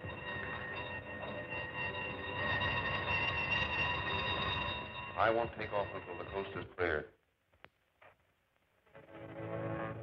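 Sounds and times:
electric alarm bell ringing: 0.0s - 6.7s.

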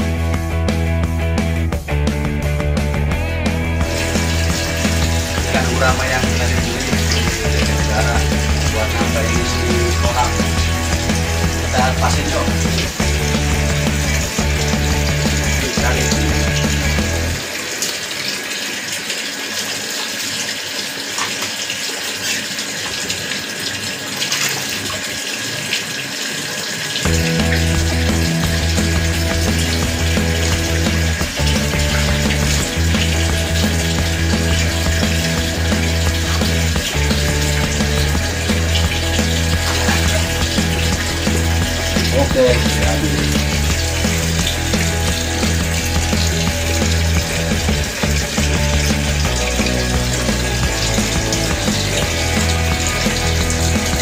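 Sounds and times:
background music with bass line: 0.0s - 17.5s, 27.0s - 54.0s
water splashing into pond: 3.7s - 54.0s.

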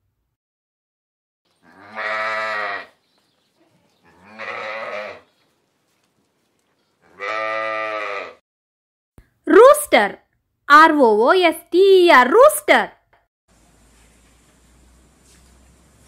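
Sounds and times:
sheep bleating: 1.6s - 3.0s, 3.6s - 5.3s, 7.0s - 8.4s.

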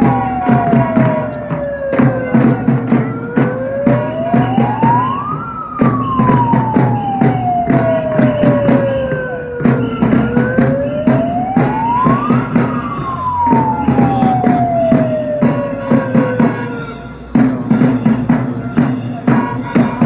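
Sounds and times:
drums beaten in steady rhythm: 0.0s - 20.0s
siren wailing up and down: 0.0s - 20.0s.

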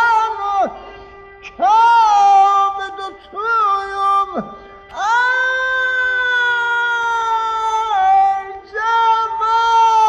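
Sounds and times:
steady drone note: 0.0s - 8.8s
man singing long wavering notes: 0.0s - 10.0s.

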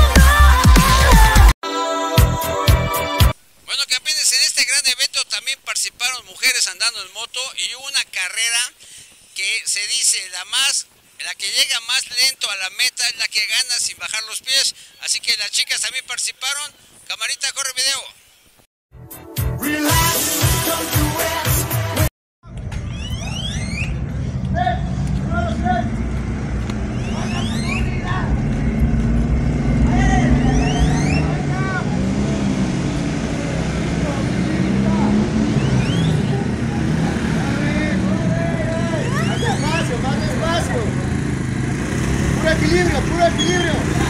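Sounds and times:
motorcycle engines at low revs: 22.5s - 44.0s
crowd voices and shouts: 29.8s - 32.2s, 33.8s - 41.8s.

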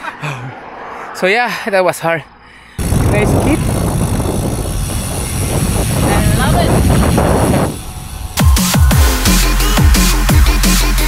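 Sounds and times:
wind rushing over microphone: 0.4s - 8.5s.

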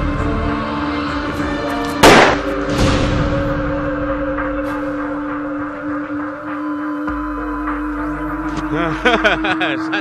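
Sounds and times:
dramatic background music: 0.0s - 10.0s
pistol shot: 2.0s - 2.5s.

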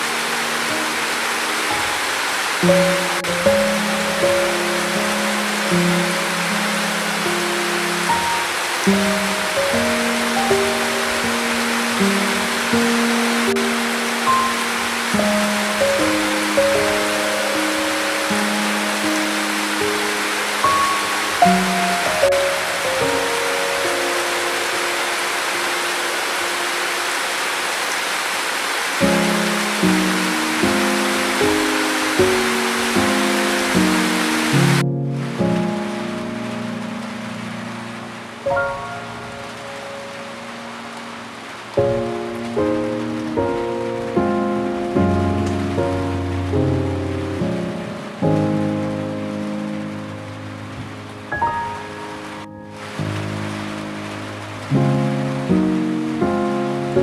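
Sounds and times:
calm piano music: 0.0s - 57.0s
rain hiss: 0.0s - 57.0s.

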